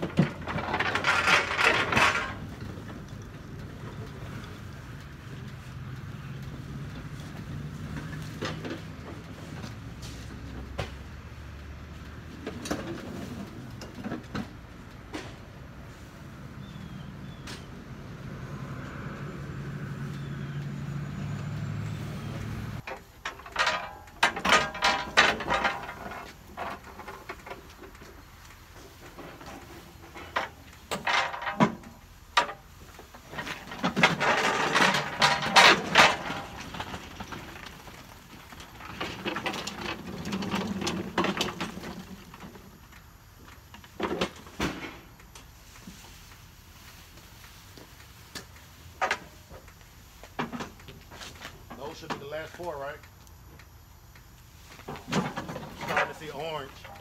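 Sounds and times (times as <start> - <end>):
metal carts rattling over pavement: 0.0 - 42.9, 50.3 - 53.0, 54.8 - 57.0.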